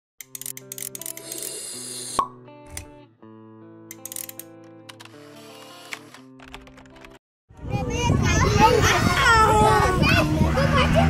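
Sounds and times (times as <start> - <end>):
quick clicks: 0.2 - 1.5, 3.9 - 7.2.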